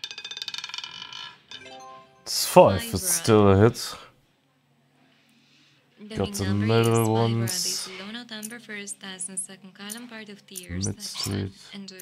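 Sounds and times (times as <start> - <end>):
roulette ball clattering: 0.0 - 1.6
rising chime of stepped tones: 1.5 - 2.6.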